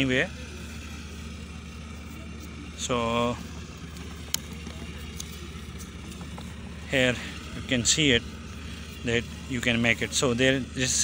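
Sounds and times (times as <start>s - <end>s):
distant machinery humming: 0.0s - 11.0s.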